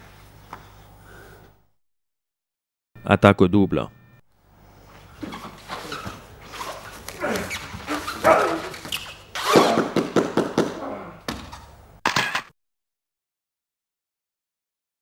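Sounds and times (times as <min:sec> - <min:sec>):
bodies scuffling on mat: 0:04.9 - 0:10.0
strained grunts and heavy breaths: 0:05.7 - 0:08.8.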